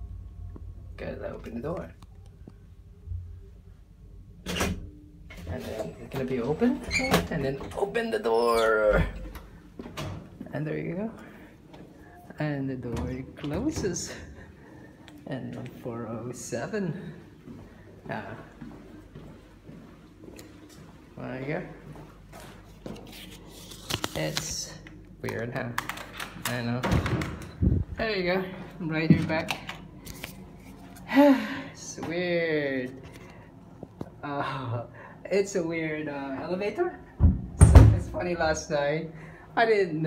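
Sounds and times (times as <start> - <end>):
elevator low hum: 0.0 - 22.4.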